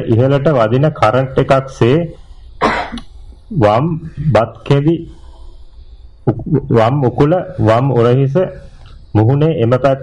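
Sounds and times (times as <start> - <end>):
man speaking: 0.0 - 2.3, 3.5 - 5.3, 6.3 - 10.0
person coughing: 2.6 - 3.1.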